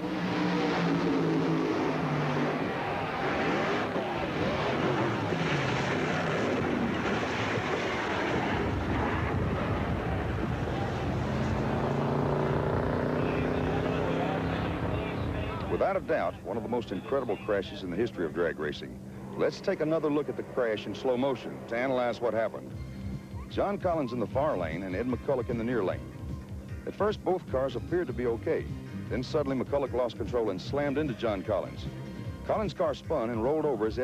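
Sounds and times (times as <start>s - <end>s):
loud racing engine noise: 0.0s - 24.3s
crowd voices: 1.9s - 5.9s, 9.7s - 12.1s, 13.1s - 18.4s.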